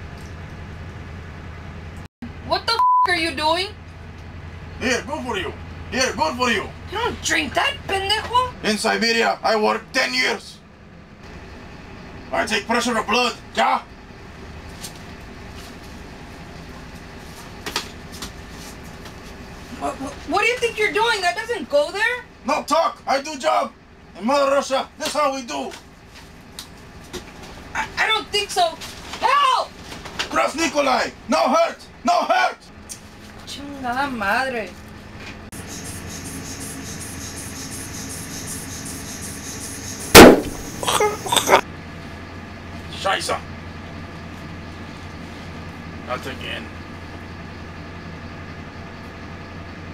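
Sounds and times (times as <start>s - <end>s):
vehicle interior rumble: 0.0s - 35.6s, 39.4s - 49.9s
loud sudden bang: 40.1s - 40.9s.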